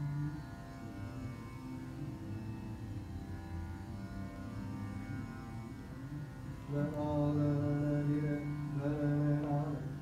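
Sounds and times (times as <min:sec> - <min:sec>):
tanpura drone: 0:00.0 - 0:10.0
man singing long low note: 0:06.7 - 0:10.0.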